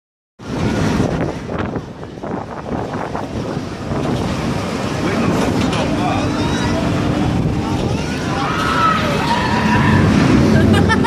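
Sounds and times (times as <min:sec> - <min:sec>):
steady low rumble: 0:00.4 - 0:11.0
wind buffeting microphone: 0:00.4 - 0:11.0
voices of people: 0:04.8 - 0:11.0.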